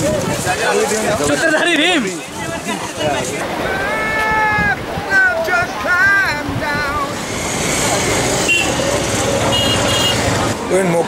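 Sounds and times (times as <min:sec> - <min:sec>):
busy street traffic: 0:00.0 - 0:11.0.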